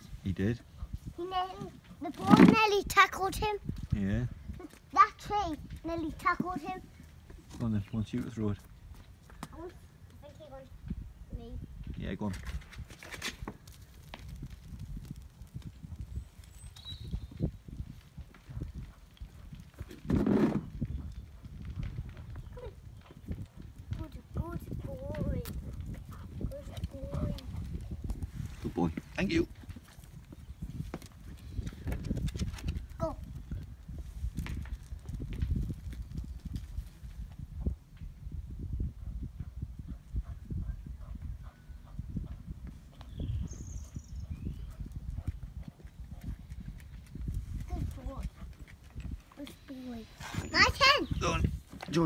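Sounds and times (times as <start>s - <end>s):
wind buffeting microphone: 0.0s - 52.0s
dog paws running on driveway: 11.9s - 38.0s, 42.1s - 52.0s.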